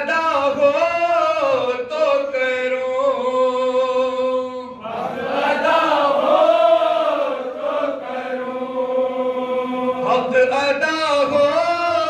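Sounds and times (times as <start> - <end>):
men reciting elegy unaccompanied: 0.0 - 12.0.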